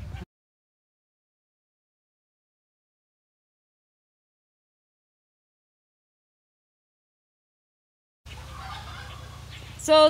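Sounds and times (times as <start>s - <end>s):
weak scattered outdoor sounds: 8.3s - 10.0s.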